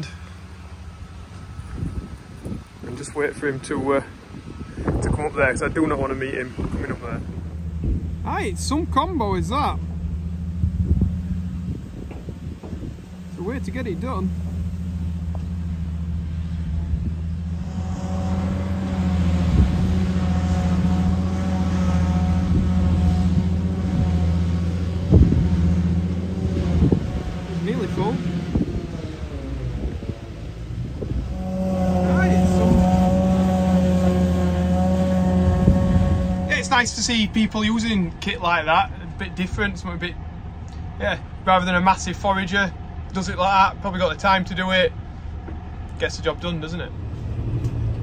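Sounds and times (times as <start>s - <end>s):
vehicle engine humming and whining: 0.0s - 48.0s.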